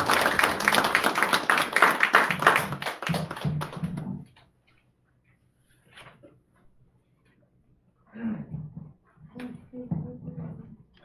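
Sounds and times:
small audience clapping: 0.0 - 4.4.

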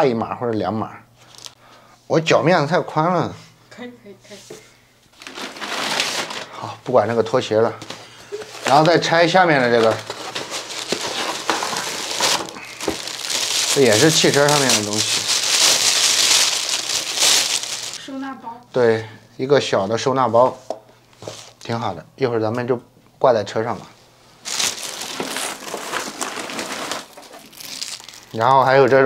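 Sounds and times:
plastic bag crinkling: 8.3 - 18.0, 24.4 - 28.6
cardboard box rustling: 9.6 - 18.0, 24.5 - 28.0.

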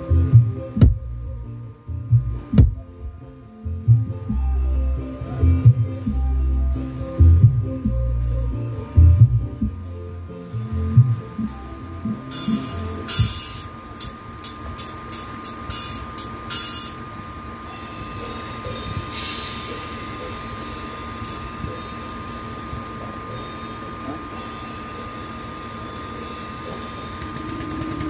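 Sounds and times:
deep subwoofer bass notes: 0.0 - 13.4.

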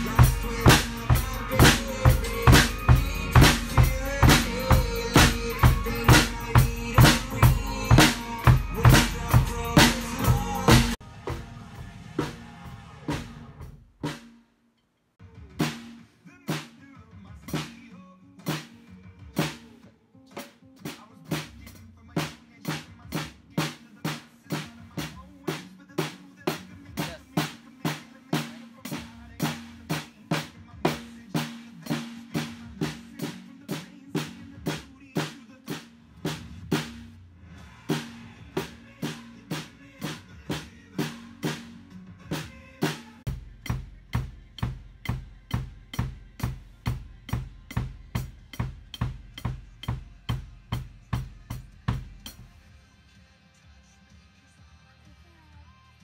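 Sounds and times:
bass line: 0.0 - 13.8, 37.8 - 52.6
heavy low beats: 0.0 - 13.9, 43.3 - 52.5
acoustic drum kit beat: 0.0 - 14.4, 15.2 - 52.7.

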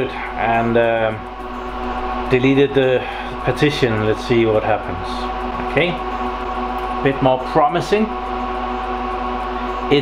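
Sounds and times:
server cooling fans whirring: 0.0 - 10.0.

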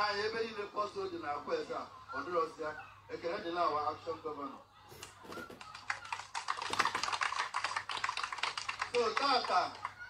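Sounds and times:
crowd clapping: 5.5 - 10.0.

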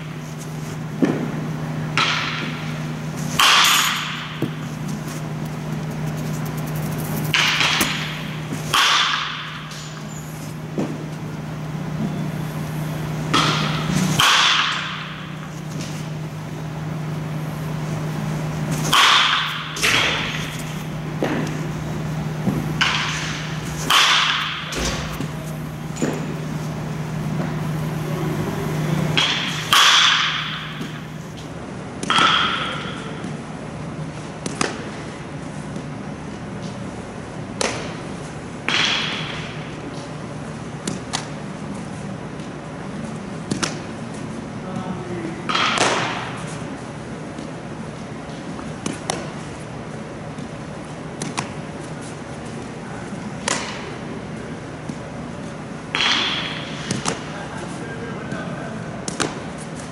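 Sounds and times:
steady low hum: 0.0 - 59.9
bat cracking against ball: 0.4 - 12.2, 13.0 - 31.4, 32.0 - 33.0, 38.6 - 39.6, 45.5 - 46.5, 55.9 - 57.3
ball impact echoing: 3.4 - 31.4.

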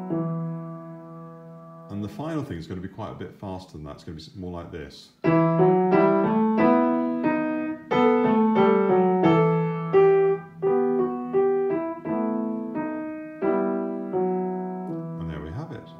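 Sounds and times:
upright piano exercise: 0.0 - 2.8, 5.1 - 15.9.

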